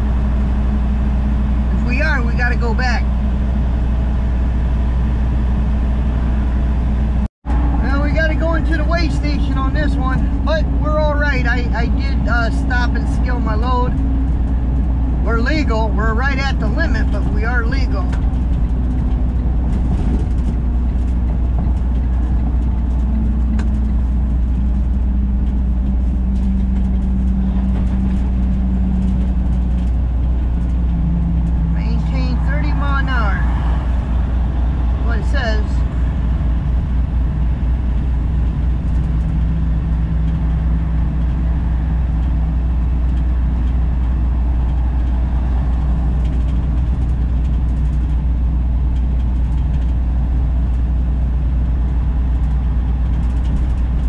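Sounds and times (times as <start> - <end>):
diesel truck engine: 0.0 - 54.0
road drone: 0.0 - 54.0.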